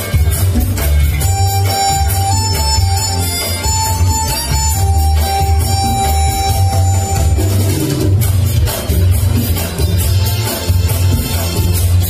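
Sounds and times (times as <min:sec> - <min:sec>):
backing music with pulsing bass: 0:00.0 - 0:12.0
harmonica long note: 0:01.2 - 0:08.3.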